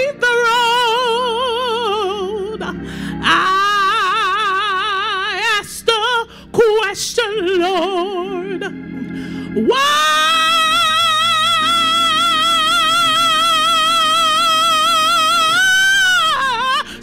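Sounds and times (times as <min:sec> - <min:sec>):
woman singing gospel: 0:00.0 - 0:17.0.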